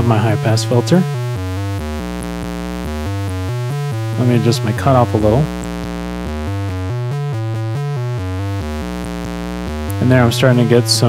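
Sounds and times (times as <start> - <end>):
synthesizer sequence: 0.0 - 11.0.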